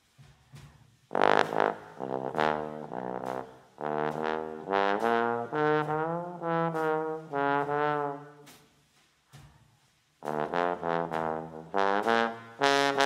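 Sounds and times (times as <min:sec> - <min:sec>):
bass trombone solo: 0:01.1 - 0:08.5, 0:10.2 - 0:13.0.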